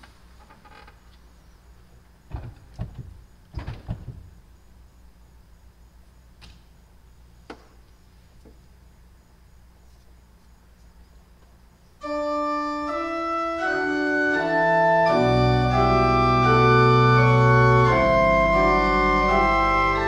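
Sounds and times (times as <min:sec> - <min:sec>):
steady low hum: 0:00.0 - 0:20.0
knocks and thumps at organ console: 0:02.3 - 0:04.4.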